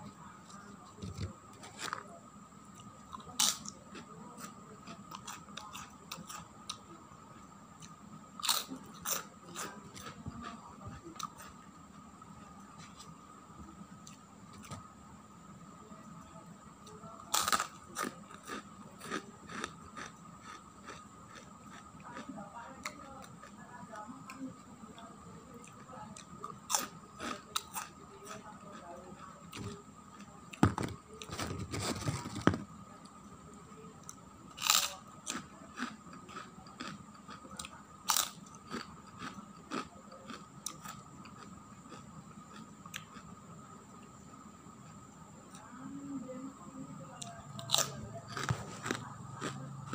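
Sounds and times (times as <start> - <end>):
crackers crunching: 0.5 - 2.1, 7.8 - 10.6, 17.3 - 22.2, 29.1 - 33.2, 34.1 - 43.3, 47.6 - 49.9.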